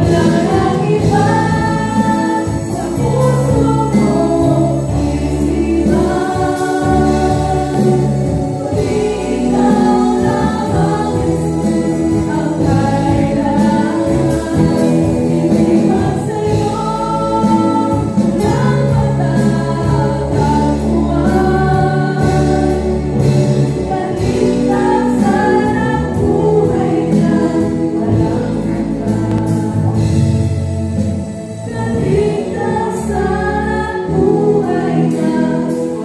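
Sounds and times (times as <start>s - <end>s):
live band playing: 0.0s - 36.0s
women singing: 0.0s - 36.0s.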